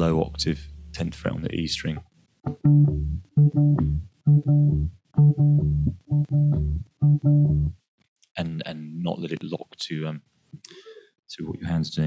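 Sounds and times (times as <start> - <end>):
electric bass plucking octave notes: 0.0 - 7.8.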